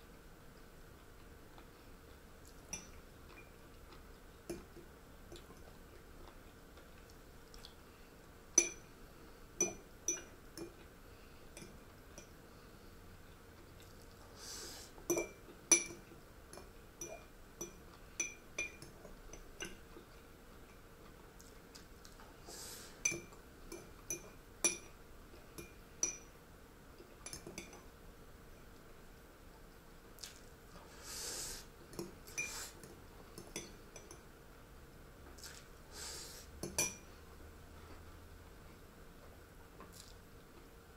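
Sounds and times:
metal spoon clinking ceramic bowl: 0:08.6 - 0:08.9, 0:15.1 - 0:19.4, 0:36.6 - 0:37.1.

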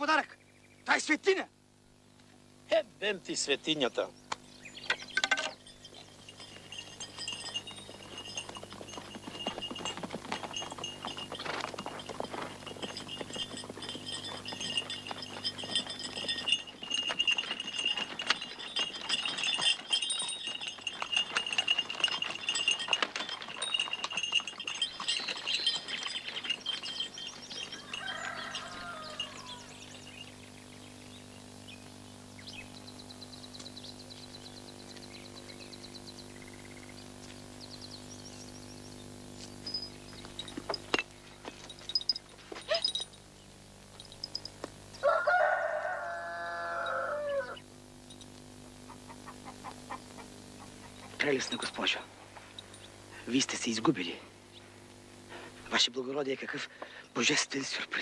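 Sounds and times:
harness clinking: 0:02.7 - 0:31.7, 0:32.4 - 0:58.0
hooves and wheels clattering: 0:02.7 - 0:58.0
rooster crowing: 0:27.6 - 0:30.0, 0:45.0 - 0:47.6.

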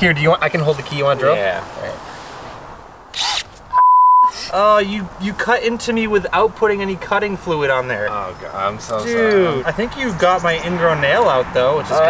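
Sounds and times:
censor bleep: 0:03.7 - 0:04.4.

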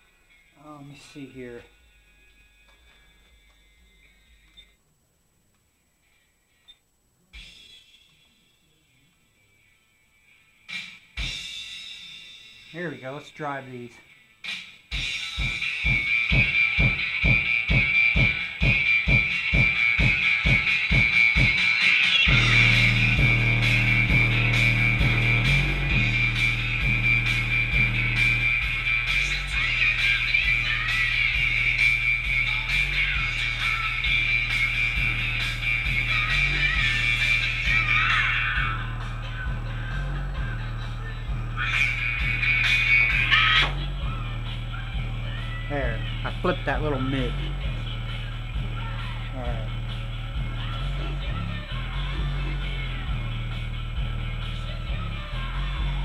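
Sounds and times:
bass-heavy music through subwoofers: 0:14.5 - 0:56.0.

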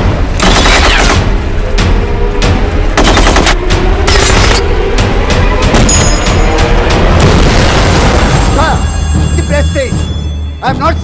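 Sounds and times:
explosion boom and rumble: 0:06.9 - 0:08.8.

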